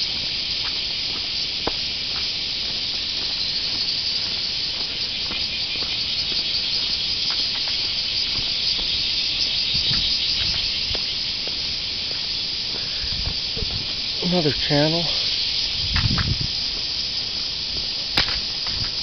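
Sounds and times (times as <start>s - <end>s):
high-pitched insect chorus: 0.0s - 19.0s.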